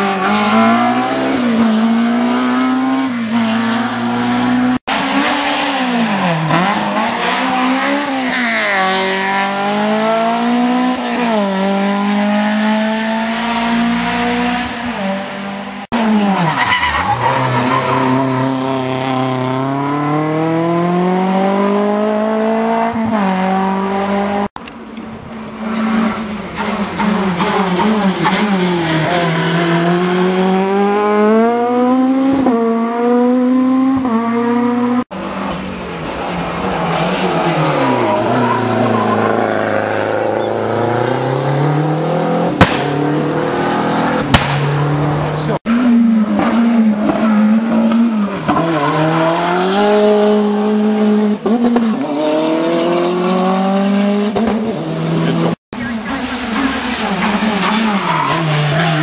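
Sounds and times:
rally car engine revving: 0.0s - 24.5s, 25.5s - 59.0s
sharp cracks: 42.6s - 43.0s, 44.2s - 44.7s.

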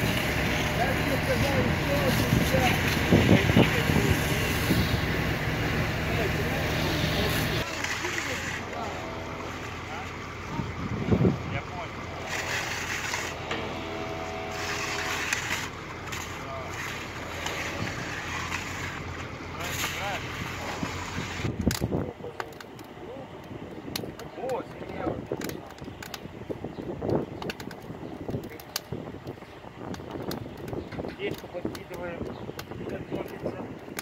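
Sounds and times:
water jet hissing over pavement: 0.0s - 8.9s, 16.5s - 21.6s
motor hum: 0.0s - 34.0s
faint voices: 0.4s - 12.6s
shovels scraping mud on stone: 6.8s - 9.8s, 12.2s - 22.9s.

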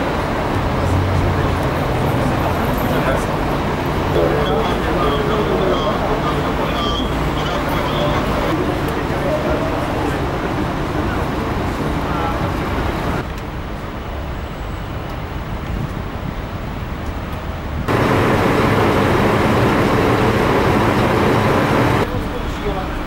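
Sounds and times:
distant voices: 0.0s - 13.2s, 17.9s - 23.0s
traffic noise: 0.0s - 23.0s.

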